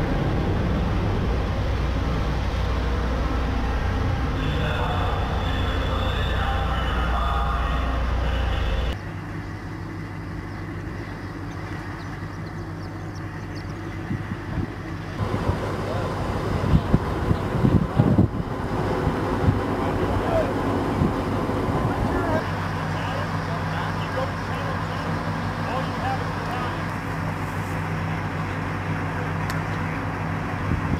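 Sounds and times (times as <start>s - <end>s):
diesel engine running: 0.0s - 30.9s.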